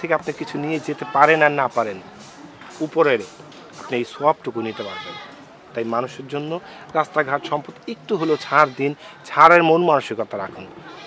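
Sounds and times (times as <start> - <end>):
man talking: 0.0 - 2.0, 2.8 - 5.2, 5.8 - 10.7
goat bleating: 4.6 - 5.4, 8.0 - 8.9.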